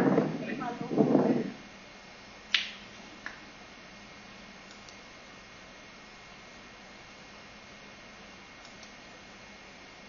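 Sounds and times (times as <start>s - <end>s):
person's voice: 0.0s - 1.6s
sharp click: 4.7s - 5.0s, 8.6s - 9.0s.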